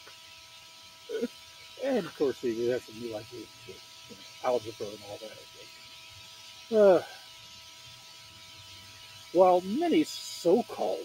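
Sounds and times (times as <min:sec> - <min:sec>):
faint steady hiss: 0:00.0 - 0:11.0
thin electrical hum: 0:00.0 - 0:11.0.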